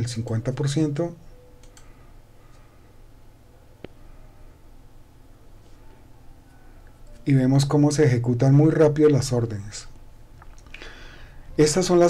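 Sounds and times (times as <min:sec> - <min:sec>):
computer mouse clicks: 0:01.6 - 0:01.9.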